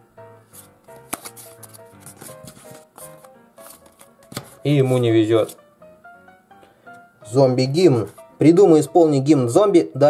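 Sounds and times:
soft background music: 0.0 - 10.0
playing cards clicking and sliding: 0.5 - 5.6.

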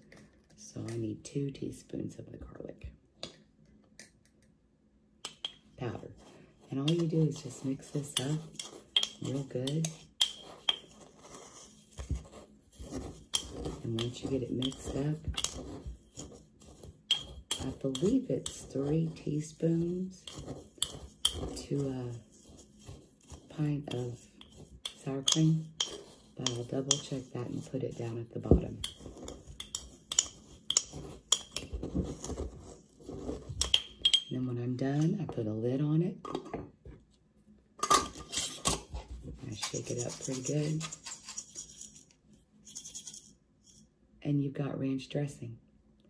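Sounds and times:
spoon stirring dry mix in jar: 5.3 - 34.7, 37.9 - 43.9
metal spoon clinking on glass: 33.7 - 34.3.

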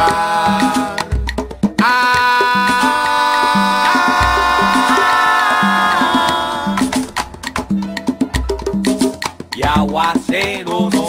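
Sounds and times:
salsa percussion hits: 0.0 - 11.0.

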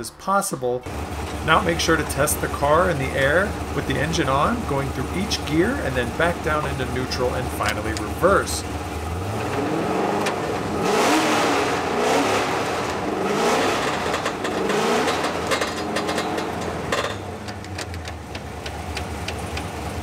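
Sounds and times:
car engine and transmission revving: 0.8 - 20.0
shifter clicks: 6.0 - 10.8, 13.8 - 20.0.

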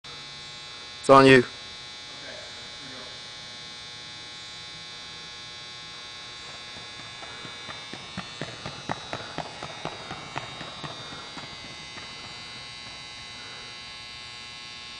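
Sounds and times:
steady electrical hum: 0.1 - 14.9
running footsteps on rubber track: 6.0 - 14.0.

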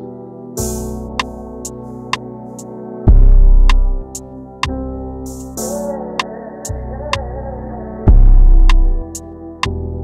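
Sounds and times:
hip-hop instrumental: 0.0 - 10.0.

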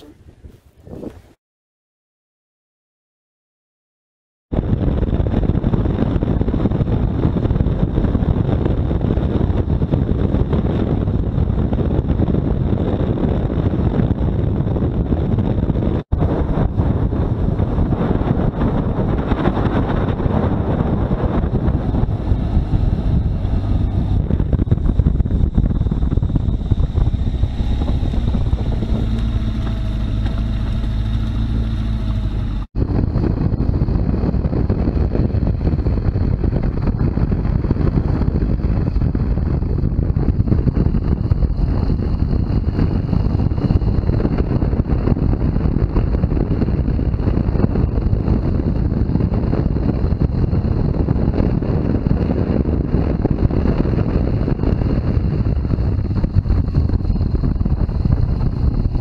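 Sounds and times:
wind rushing over microphone: 0.0 - 1.4, 4.5 - 59.0
motorcycle engine at speed: 4.5 - 59.0.

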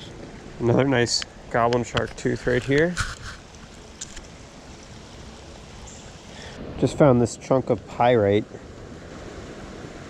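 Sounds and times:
creek flowing: 0.0 - 10.0.

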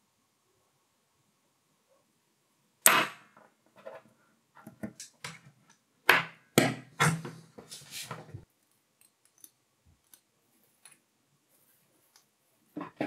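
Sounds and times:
magnet and metal pieces clacking: 8.6 - 11.0.

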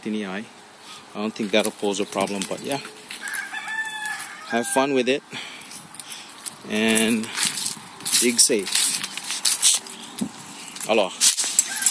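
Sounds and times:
footsteps crunching dry leaves: 0.9 - 11.9.

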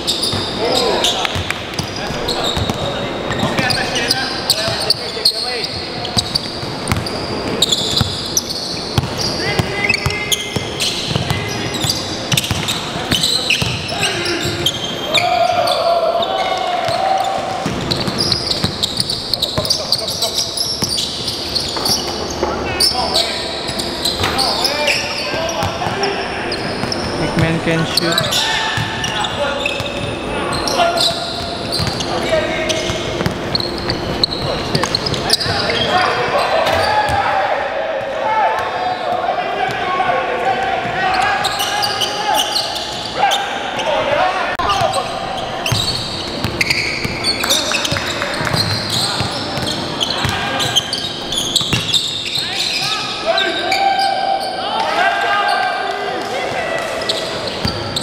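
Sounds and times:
players calling out: 0.0 - 58.0.

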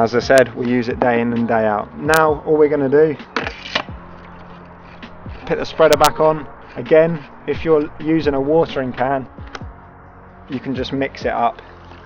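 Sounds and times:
plastic scrape: 3.3 - 5.6.

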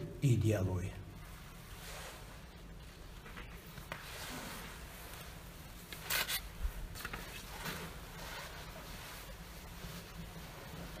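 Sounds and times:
rustling rubbing noises: 1.2 - 11.0.

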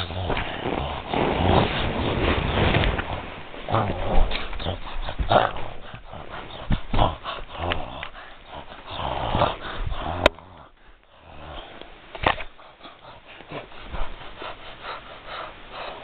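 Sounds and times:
plush toys rustling on blanket: 0.0 - 5.9
person making dog growling noises: 0.0 - 14.4.

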